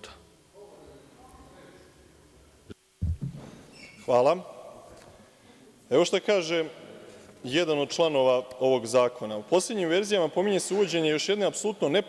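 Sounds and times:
loud low microphone thump: 0:03.0 - 0:03.6
microphone click: 0:03.0 - 0:03.6.

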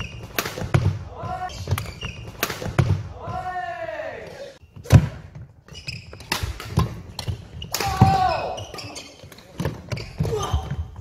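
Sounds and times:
shoe squeaks: 0:00.0 - 0:00.4, 0:01.4 - 0:02.4, 0:05.6 - 0:06.3, 0:07.0 - 0:11.0
racket striking shuttlecock: 0:00.0 - 0:00.9, 0:01.7 - 0:03.0, 0:06.2 - 0:08.1
footfalls on wooden court: 0:04.8 - 0:11.0.

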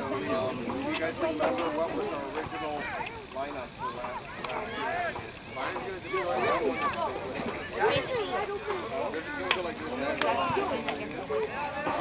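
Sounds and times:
distant voices calling out: 0:00.0 - 0:12.0.

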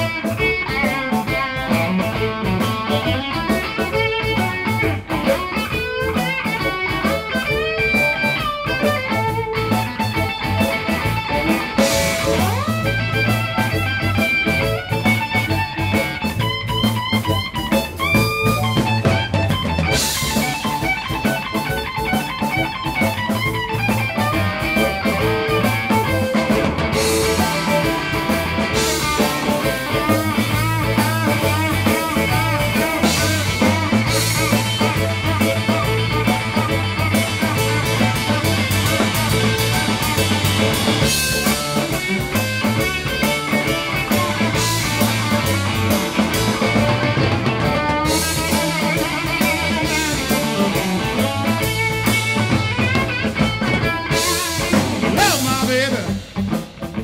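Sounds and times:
bass guitar: 0:00.0 - 0:57.0
drums: 0:00.0 - 0:57.0
electric guitar lead: 0:00.0 - 0:57.0.

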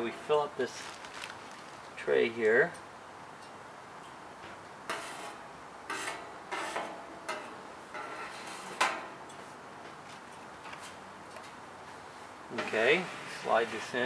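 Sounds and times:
metal spoon scraping metal pan: 0:04.9 - 0:08.8.

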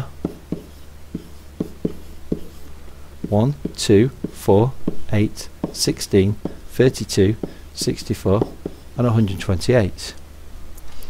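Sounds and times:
stylus taps and strokes: 0:00.0 - 0:10.2
steady low hum: 0:00.0 - 0:11.0.

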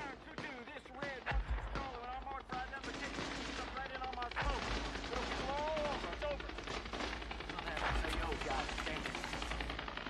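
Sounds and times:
gunshots: 0:00.0 - 0:10.0
voices: 0:00.0 - 0:10.0.

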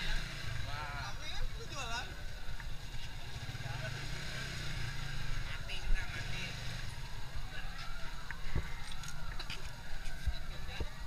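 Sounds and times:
engine rumbling: 0:00.0 - 0:11.0.

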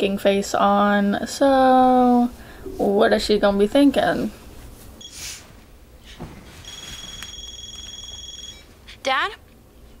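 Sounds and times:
phone ringing: 0:06.6 - 0:08.8.

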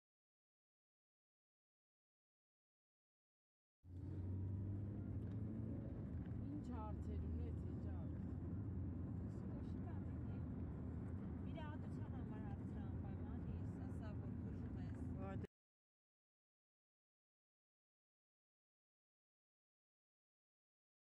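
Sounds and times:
car driving rumble from inside: 0:03.9 - 0:15.5.

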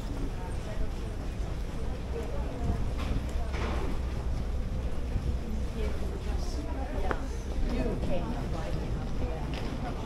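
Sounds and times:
crowd chatter: 0:00.0 - 0:10.0
steady low rumble: 0:00.0 - 0:10.0.

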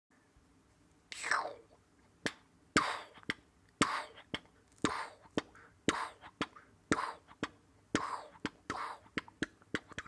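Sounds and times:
beatboxing: 0:02.2 - 0:10.0.

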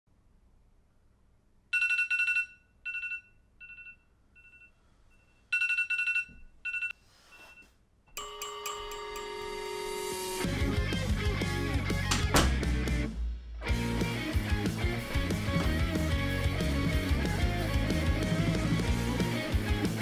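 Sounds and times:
alarm ringtone beeps: 0:01.8 - 0:10.4
guitar music: 0:10.4 - 0:20.0.

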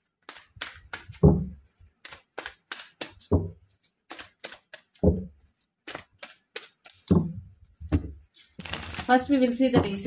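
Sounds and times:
cards snapping and rustling: 0:00.0 - 0:07.2, 0:08.5 - 0:09.1.

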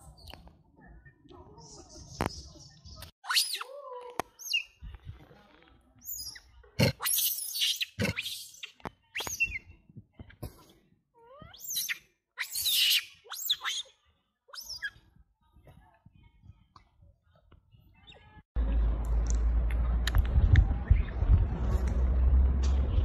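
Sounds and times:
monkey screeches: 0:03.2 - 0:03.7, 0:07.0 - 0:09.5, 0:11.4 - 0:13.9, 0:14.5 - 0:15.0
monkeys squeaking and chirping: 0:03.2 - 0:03.7, 0:06.0 - 0:09.6, 0:11.2 - 0:13.9, 0:14.5 - 0:15.0.

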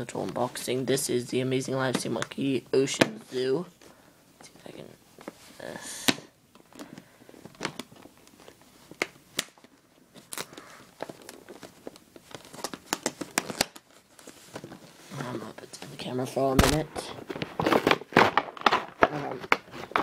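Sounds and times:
plastic packaging crinkling: 0:06.5 - 0:20.0.

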